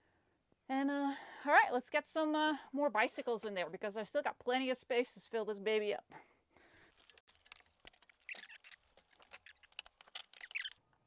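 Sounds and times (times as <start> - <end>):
brief squeaks: 8.2 - 10.8.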